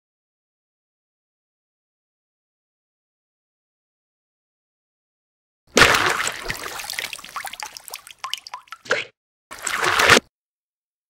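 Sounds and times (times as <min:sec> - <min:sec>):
liquid splashing: 0:05.7 - 0:10.3
bubbling and dripping: 0:05.8 - 0:10.2.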